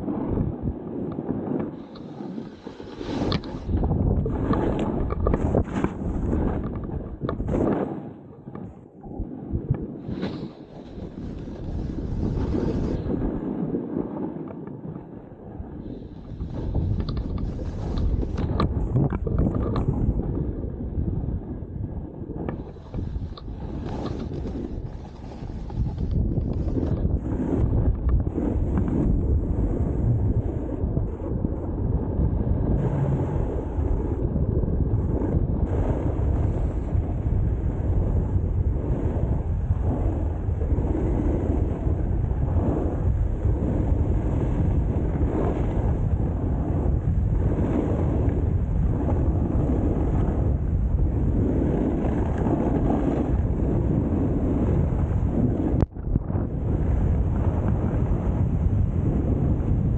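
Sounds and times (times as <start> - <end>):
snowboard scraping over snow: 0.0 - 59.9
wind buffeting microphone: 0.0 - 59.9.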